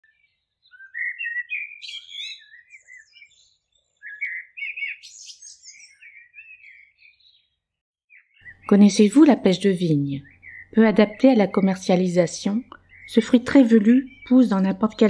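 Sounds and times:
bird singing warbling phrases: 0.0s - 15.0s.

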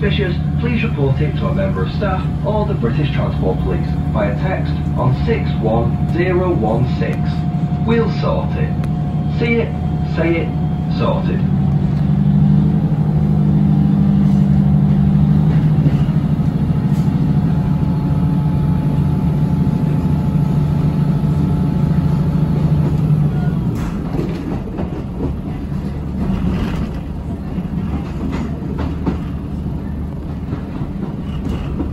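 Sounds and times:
train engine droning: 0.0s - 31.9s
wheels clicking over rail joints: 22.8s - 31.9s.

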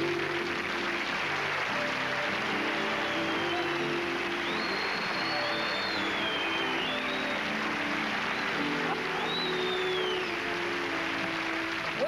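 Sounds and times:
background music with sliding tones: 0.0s - 12.0s.

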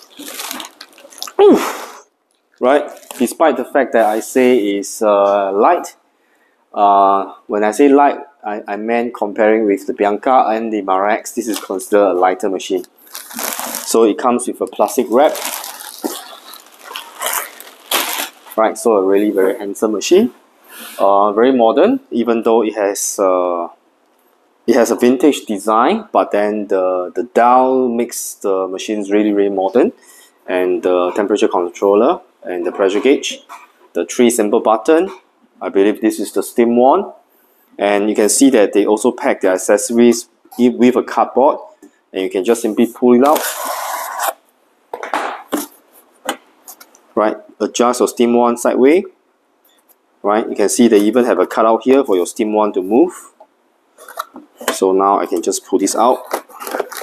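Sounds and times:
plastic film rustling: 0.0s - 1.4s, 2.6s - 3.4s, 11.4s - 12.0s, 12.8s - 19.5s, 43.2s - 44.4s, 54.0s - 57.0s
cardboard scraping and rubbing: 43.2s - 44.4s, 56.2s - 57.0s.

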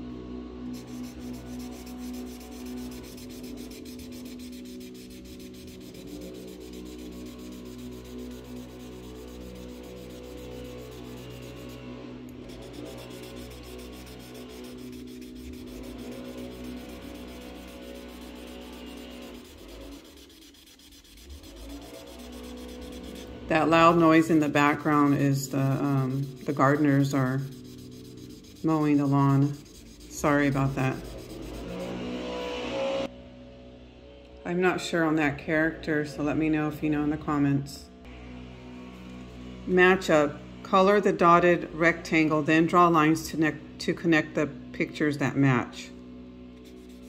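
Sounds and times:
marker rubbing on paper: 0.8s - 11.8s, 12.4s - 31.8s, 46.6s - 47.0s.

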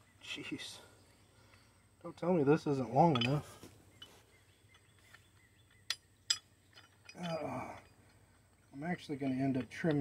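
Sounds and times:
steel tool parts clinking: 2.9s - 10.0s.

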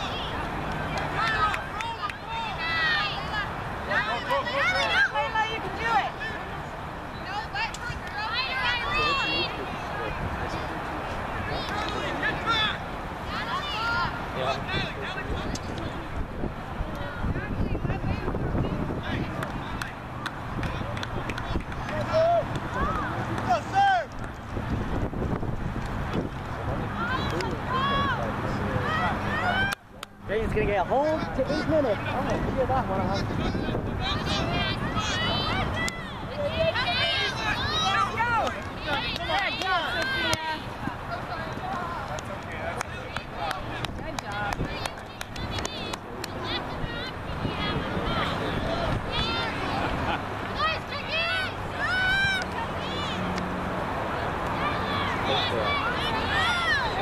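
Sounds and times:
distant girls calling and chatter: 0.0s - 57.0s
wind rumble on microphone: 14.5s - 23.1s, 24.2s - 28.4s, 32.1s - 35.8s, 43.8s - 50.2s.

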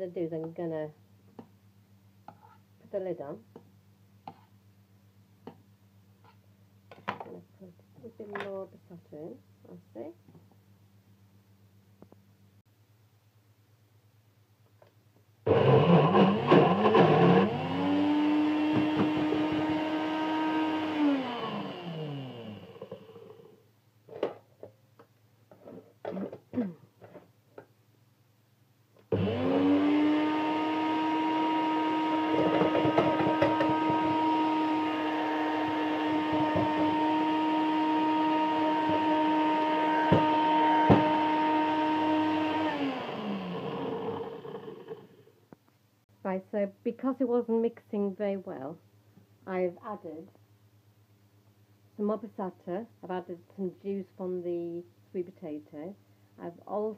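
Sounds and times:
blender whining: 15.5s - 23.5s, 29.1s - 45.3s.

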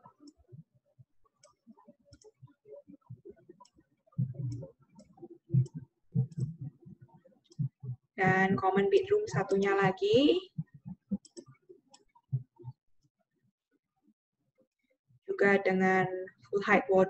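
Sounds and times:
computer mouse clicking: 11.2s - 12.1s.

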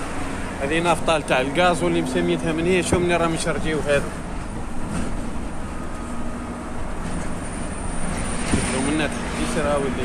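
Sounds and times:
truck engine and tyres rumbling: 0.0s - 10.0s.

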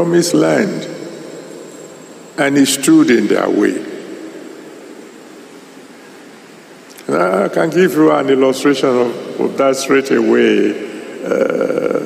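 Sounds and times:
echo of spoken word: 0.0s - 1.3s, 2.4s - 4.4s, 6.9s - 12.0s
background hiss: 0.0s - 12.0s
faint high whine: 0.0s - 12.0s.

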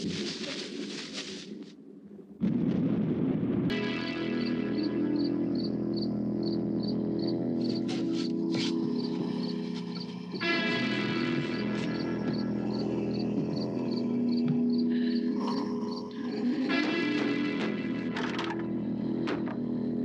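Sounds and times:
film soundtrack music: 3.4s - 20.0s.

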